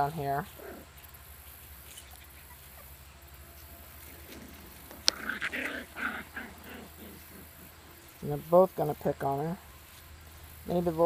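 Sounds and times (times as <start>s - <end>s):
rustles on grass: 0.0s - 11.0s
steady low hum: 0.0s - 11.0s
puppies squeaking: 0.2s - 8.1s.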